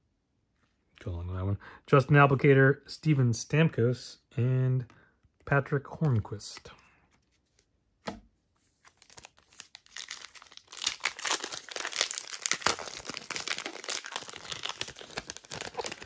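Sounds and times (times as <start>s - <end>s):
foil wrapper crinkling as torn: 8.9s - 16.0s.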